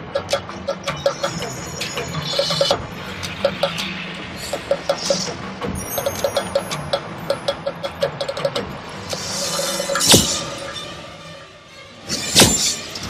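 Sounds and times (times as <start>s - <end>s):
ticking percussion: 0.2s - 10.8s
loud orchestral hits: 9.5s - 11.4s.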